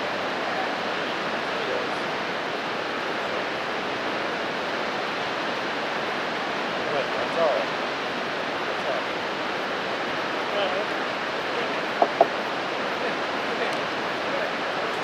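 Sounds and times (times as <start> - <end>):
river rushing: 0.0 - 15.0.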